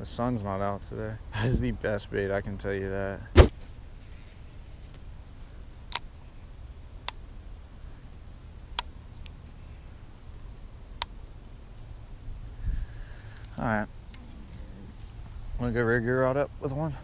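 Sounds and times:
faint low rumble: 0.0 - 17.0.

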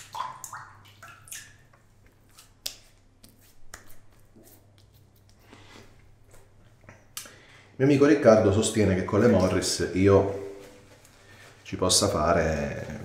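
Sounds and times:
small wet squelches: 0.0 - 7.8.

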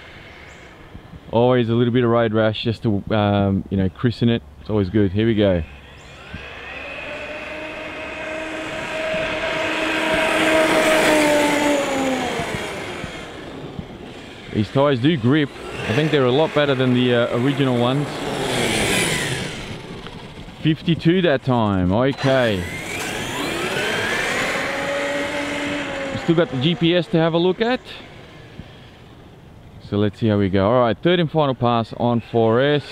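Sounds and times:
electric motor whine: 5.6 - 21.0, 22.0 - 29.5
steady rushing noise: 5.6 - 30.5
tyre noise on asphalt: 6.0 - 29.8.

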